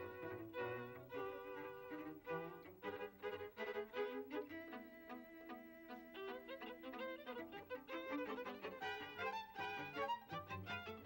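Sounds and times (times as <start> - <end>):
string quartet playing: 0.0 - 11.0.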